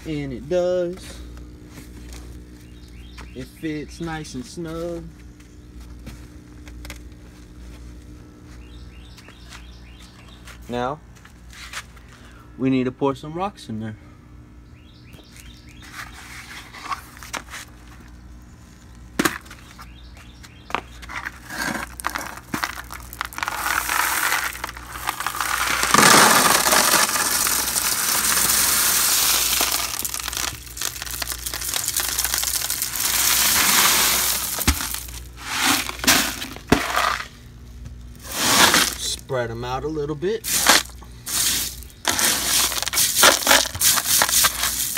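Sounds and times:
pebbles pouring onto plastic: 0:21.8 - 0:37.3, 0:38.2 - 0:39.2, 0:40.4 - 0:44.9.

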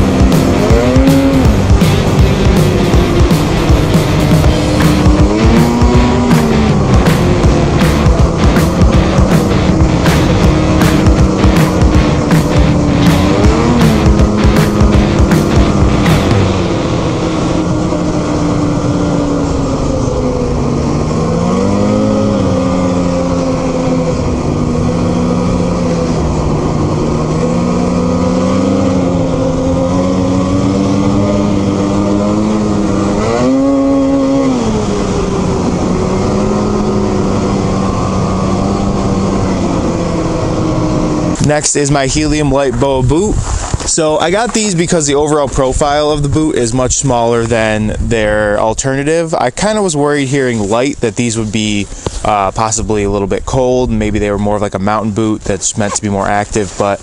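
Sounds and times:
snowmobile engine running: 0:00.0 - 0:57.0.

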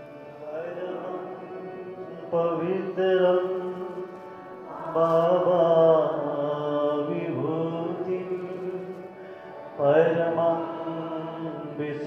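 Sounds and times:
devotional chanting: 0:00.0 - 0:12.0.

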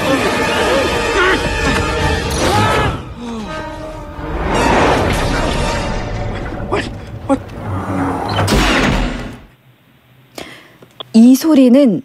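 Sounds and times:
film score music: 0:00.0 - 0:09.6.

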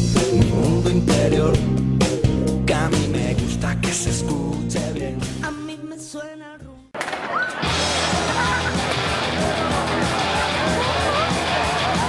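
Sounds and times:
pop song: 0:00.0 - 0:07.0
crowd din with shouting: 0:07.0 - 0:12.0.

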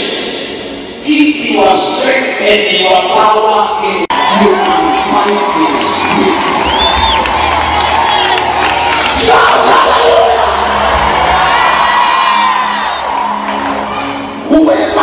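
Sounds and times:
congregation praying and shouting: 0:00.0 - 0:15.0
whoops and cries: 0:04.1 - 0:14.4.

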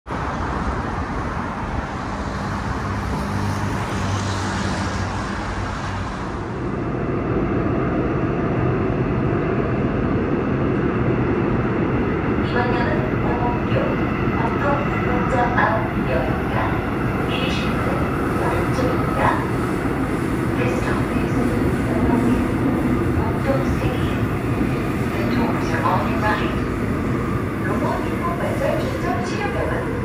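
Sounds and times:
street traffic noise: 0:00.1 - 0:06.7
subway train running rumble: 0:00.1 - 0:30.0
recorded onboard announcement: 0:12.4 - 0:19.6, 0:20.5 - 0:24.4, 0:25.0 - 0:26.9, 0:27.6 - 0:30.0.

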